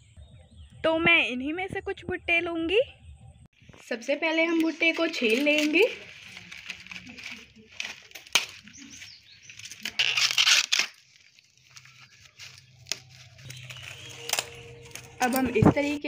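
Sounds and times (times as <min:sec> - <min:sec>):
corn husks ripping and rustling: 0:04.6 - 0:16.0
husks snapping: 0:04.6 - 0:16.0.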